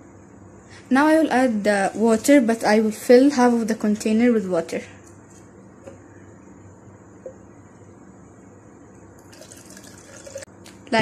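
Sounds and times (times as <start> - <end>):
water pouring into plastic cup: 9.2 - 10.5.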